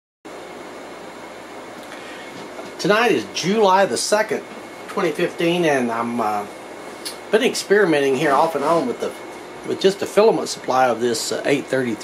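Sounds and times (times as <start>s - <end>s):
room noise hiss: 0.3s - 12.0s.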